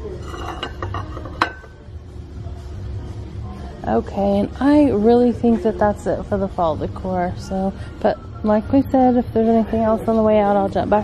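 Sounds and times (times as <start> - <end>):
ceramic plate clink: 0.2 - 1.8.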